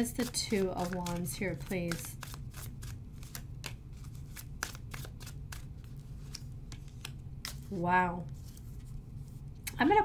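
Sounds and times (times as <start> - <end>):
cards being shuffled: 0.0 - 9.7.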